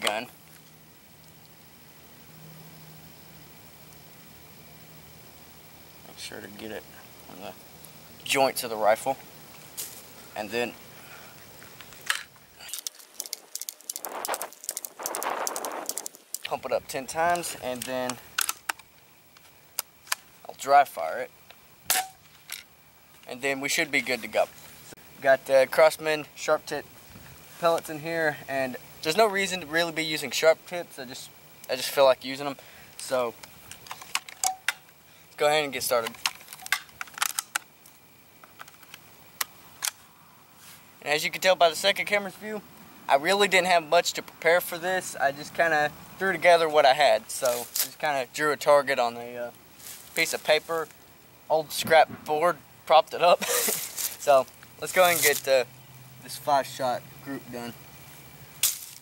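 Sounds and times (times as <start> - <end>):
small metallic clicks and rattles: 11.8 - 16.6, 17.3 - 20.2, 21.4 - 23.3, 33.0 - 35.0, 35.9 - 40.0
air rifle clicks: 18.0 - 20.2.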